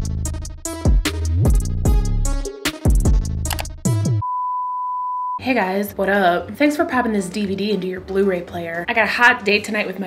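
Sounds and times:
high-pitched beep tone: 4.2s - 5.4s.

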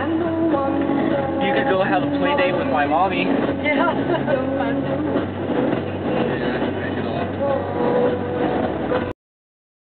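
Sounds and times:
car road and engine rumble: 0.0s - 9.1s.

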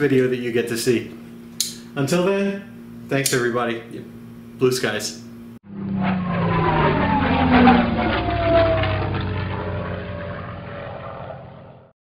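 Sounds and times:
propeller airplane flying past: 5.6s - 12.0s.

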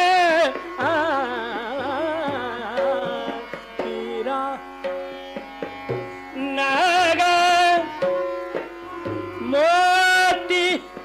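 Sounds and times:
tabla strokes: 0.0s - 11.0s.

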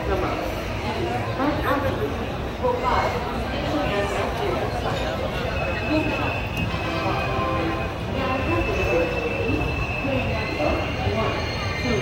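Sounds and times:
indistinct voices: 0.0s - 12.0s
train coaches rumbling: 0.0s - 12.0s
train wheels squealing: 4.8s - 12.0s.

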